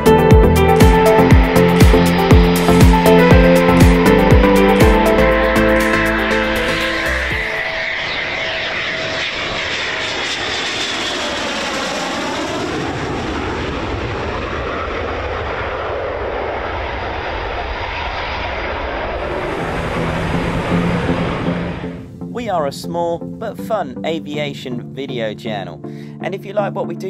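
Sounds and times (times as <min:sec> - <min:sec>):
jet taking off: 0:00.0 - 0:24.0.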